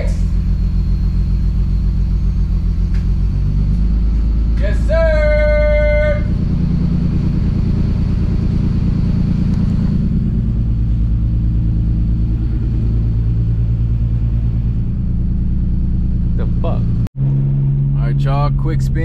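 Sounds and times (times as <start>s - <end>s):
car engine idling: 0.0s - 19.0s.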